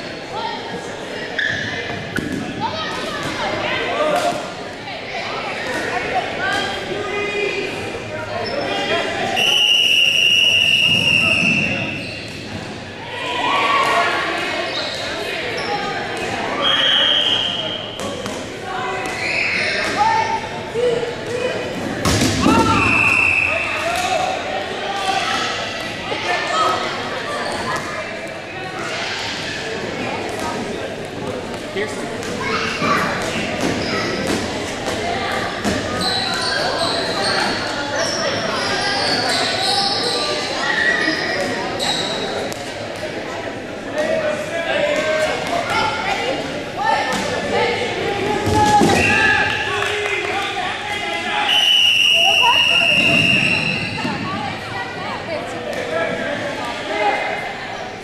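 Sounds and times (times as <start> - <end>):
players calling and shouting: 0.0 - 58.0.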